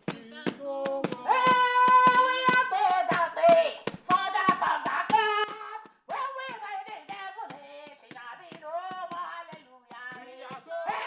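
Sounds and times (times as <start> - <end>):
hand claps: 0.0 - 11.0
woman singing through a megaphone: 0.0 - 11.0.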